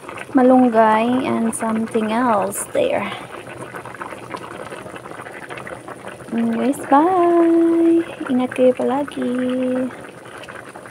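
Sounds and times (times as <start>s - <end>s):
soup boiling with bubbling pops: 0.0s - 10.9s.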